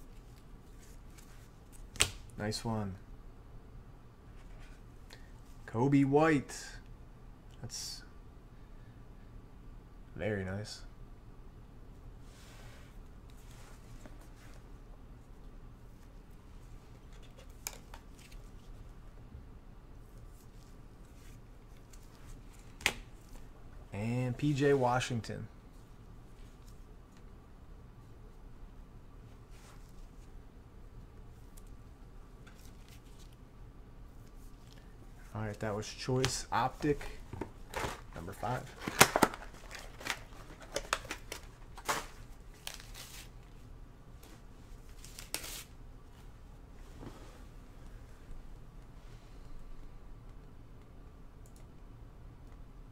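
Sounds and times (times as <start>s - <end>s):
faint room noise: 0.0s - 52.9s
trading cards clattering: 36.2s - 43.3s
packaging clicks and crinkling: 36.8s - 43.2s.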